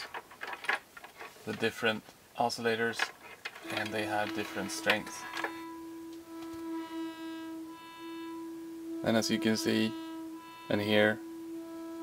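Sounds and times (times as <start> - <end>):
modular synthesizer drone: 3.6 - 12.0.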